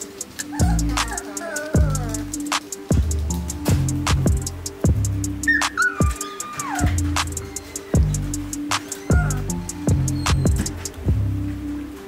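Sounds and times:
background music with steady beat: 0.0 - 12.0
puppy whining: 5.4 - 7.8, 8.9 - 10.8.

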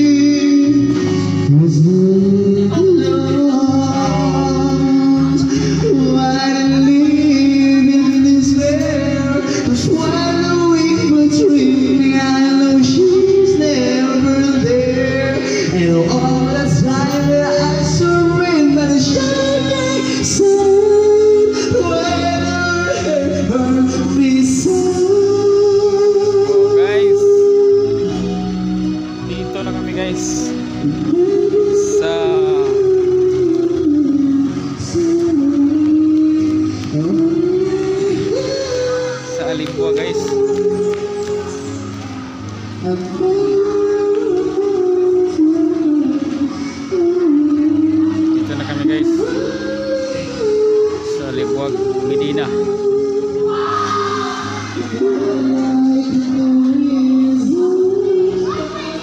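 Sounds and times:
person singing karaoke: 0.0 - 59.0
recorded backing track: 0.0 - 59.0
slow sliding melody: 0.0 - 59.0.

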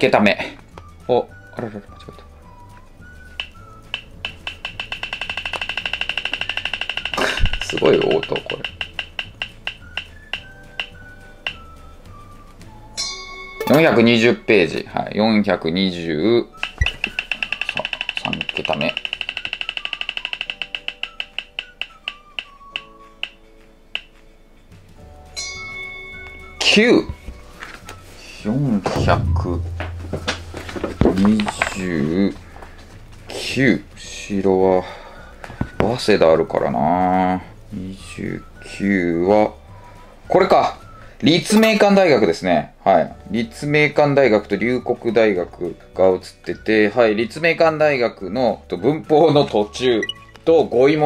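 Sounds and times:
roulette wheel ticking: 3.4 - 11.6, 16.6 - 23.4
held tone: 28.9 - 32.0.

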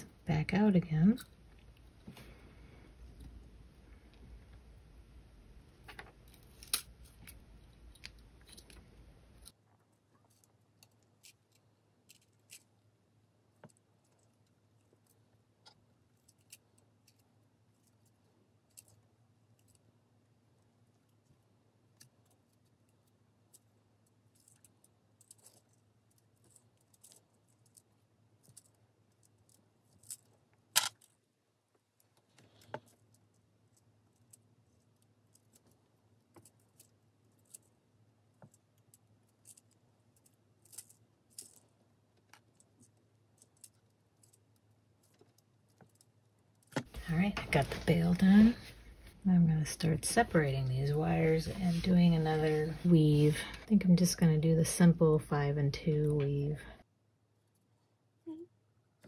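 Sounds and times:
clicks of copper wire weaving: 5.9 - 12.8, 13.5 - 19.9, 20.6 - 48.5.

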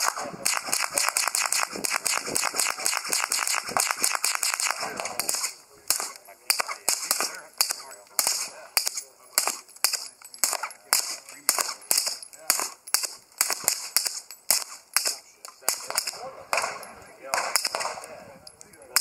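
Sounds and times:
suppressed pistol shots: 0.0 - 18.2.

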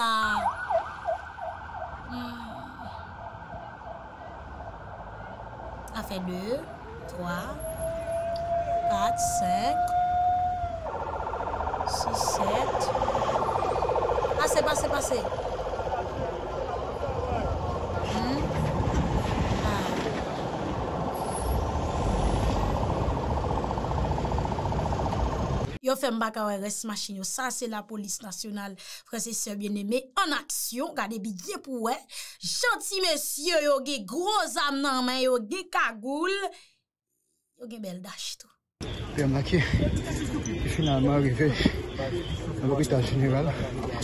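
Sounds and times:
police siren yelping: 0.0 - 2.2, 6.4 - 18.0
car engines running: 10.8 - 25.8
indistinct voices: 11.8 - 18.7, 19.6 - 20.3.

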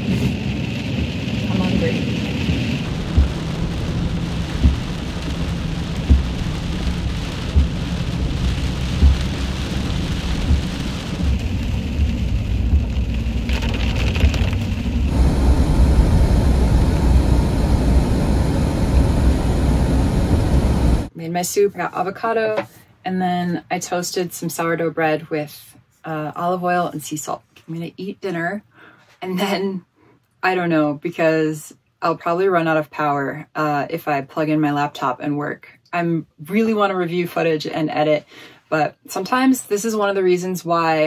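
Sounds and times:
vehicle cabin rumble with hiss: 0.0 - 21.1
soft low thumps: 2.5 - 13.5, 15.0 - 21.1.

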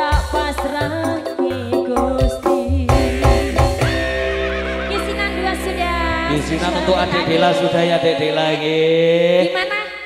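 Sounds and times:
live band music: 0.0 - 8.9
drum strokes: 0.1 - 8.6.

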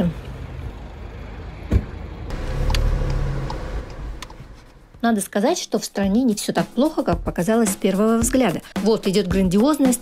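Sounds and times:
car engine starting and running: 0.9 - 5.1.

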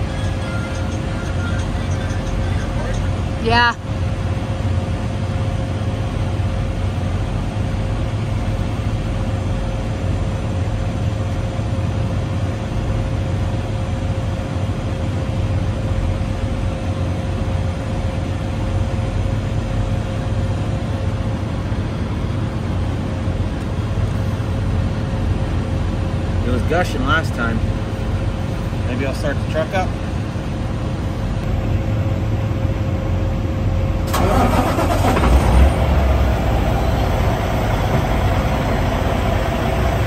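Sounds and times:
faint steady whine: 0.0 - 35.2, 35.8 - 40.0
small diesel engine running: 0.0 - 40.0.

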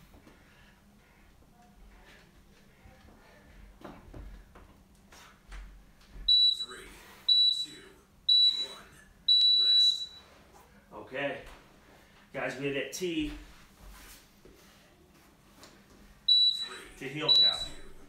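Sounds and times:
long timer beep: 6.3 - 10.2, 16.3 - 18.0
short high timer beeps: 16.3 - 17.9.

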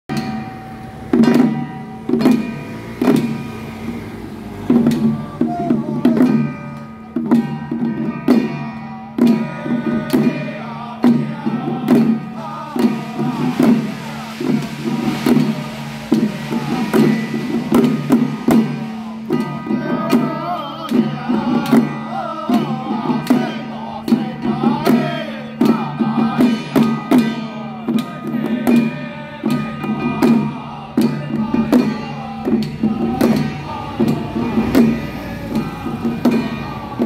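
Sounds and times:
hand drums beating: 0.1 - 37.0
group chanting in low drone: 2.4 - 6.6, 9.1 - 37.0
steady held tone: 11.5 - 24.6.

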